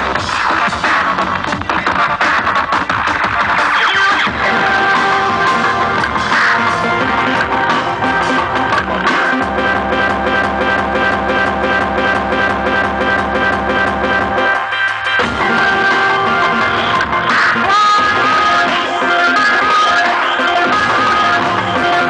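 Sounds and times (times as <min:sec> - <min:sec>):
electronic dance music: 0:00.0 - 0:22.0
fast drum and cymbal hits: 0:00.0 - 0:22.0.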